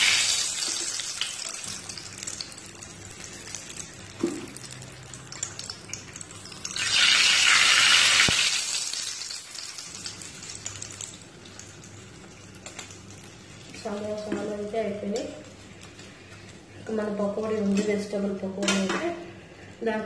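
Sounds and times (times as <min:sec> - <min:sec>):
food sizzling in hot oil: 0:00.0 - 0:15.9.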